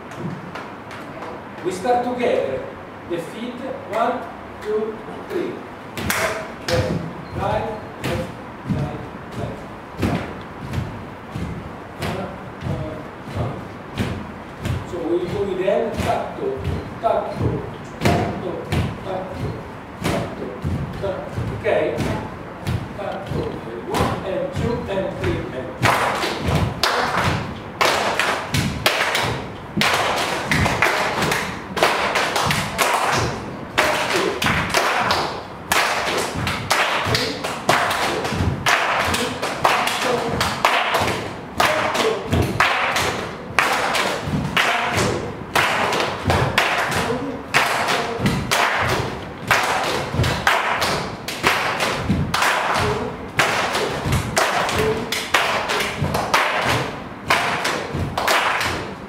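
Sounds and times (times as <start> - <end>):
hands clapping in rhythm: 6.0 - 8.9, 25.8 - 59.0
bare feet stamping on floor: 6.0 - 58.9.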